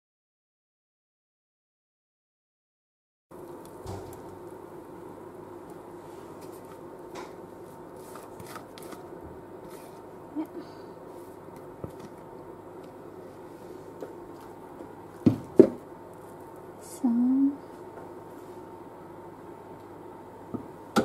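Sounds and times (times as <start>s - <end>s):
low steady hum: 3.3s - 21.0s.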